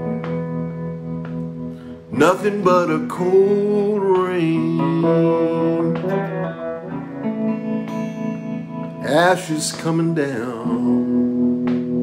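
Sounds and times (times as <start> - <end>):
guitar chords strummed: 0.0 - 12.0
person singing slow song: 0.0 - 12.0.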